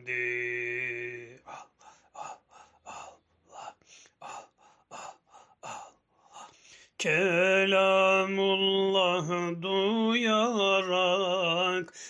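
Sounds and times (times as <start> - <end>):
rhythmic forceful breaths: 1.4 - 7.0.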